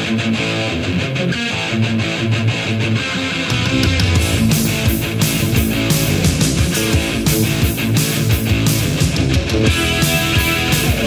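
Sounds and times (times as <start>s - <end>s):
electric guitar: 0.0s - 11.0s
heavy metal band playing: 0.0s - 11.0s.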